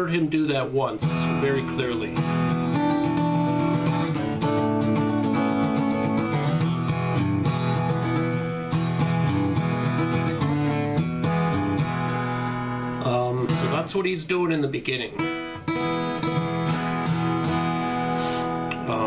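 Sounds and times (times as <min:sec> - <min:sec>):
acoustic guitar strumming blues: 0:00.0 - 0:19.0.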